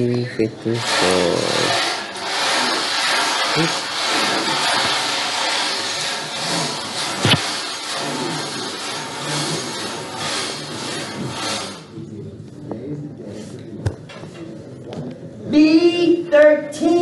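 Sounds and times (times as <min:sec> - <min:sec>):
microphone rubbing on fabric: 0:06.4 - 0:11.9.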